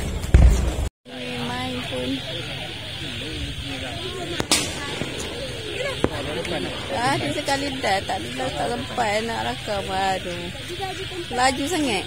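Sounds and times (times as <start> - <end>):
murmur of voices: 1.1 - 12.0
cannon firing bang: 4.3 - 9.0.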